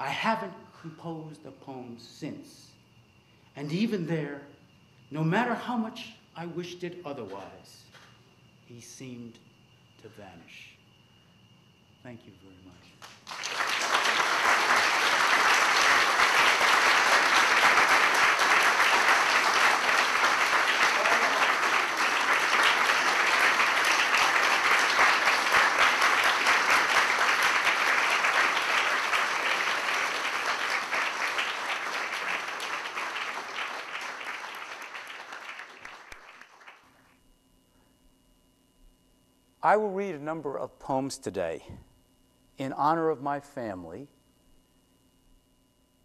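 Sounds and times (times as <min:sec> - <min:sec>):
audience applauding: 0:13.0 - 0:36.9.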